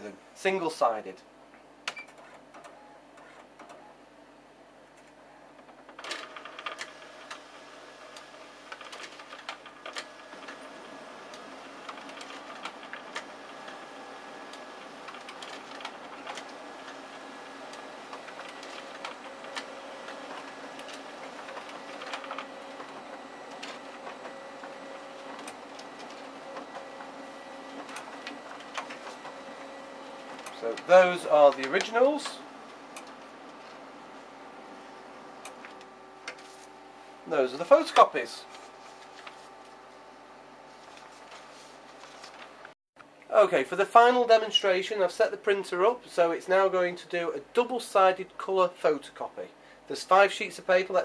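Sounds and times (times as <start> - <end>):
printer whirring hum: 1.8 - 42.8.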